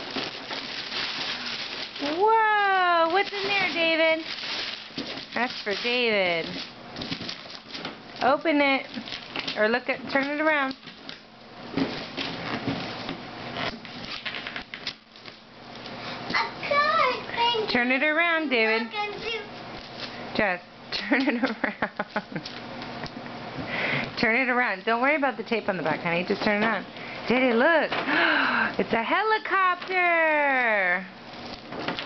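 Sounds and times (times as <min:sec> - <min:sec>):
wrapping paper tearing and crinkling: 0:00.0 - 0:09.6, 0:13.5 - 0:16.0, 0:18.9 - 0:20.2, 0:31.2 - 0:32.0.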